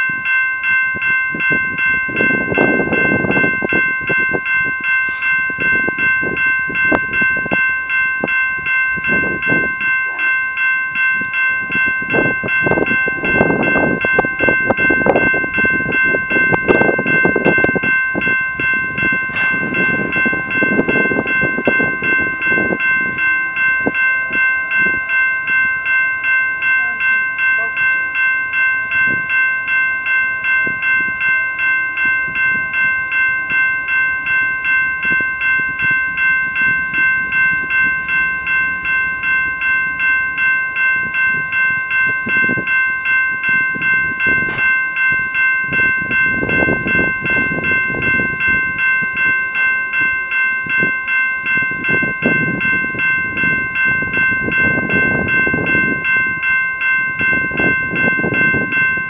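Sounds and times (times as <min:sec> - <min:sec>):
crossing warning bell ringing: 0:00.0 - 0:59.0.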